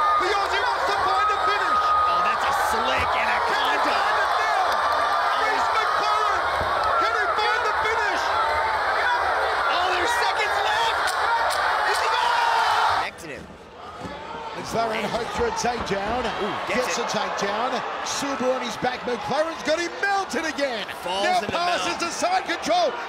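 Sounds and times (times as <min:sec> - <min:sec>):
crowd shouting and cheering: 0:00.0 - 0:23.0.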